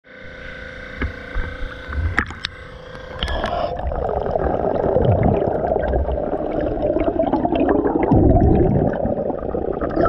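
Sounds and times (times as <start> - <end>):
machine hum with held tone: 0.0 - 10.0
low water rumble: 0.2 - 10.0.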